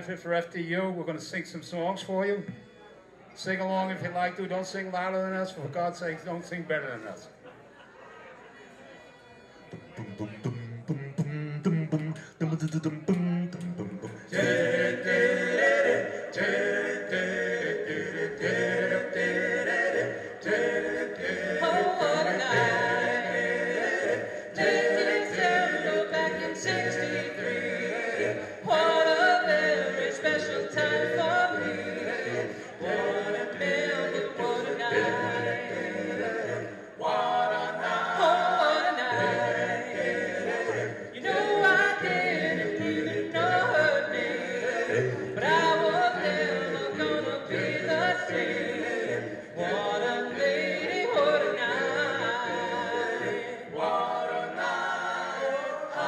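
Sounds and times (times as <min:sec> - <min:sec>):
male a cappella group singing: 0:09.7 - 0:56.0.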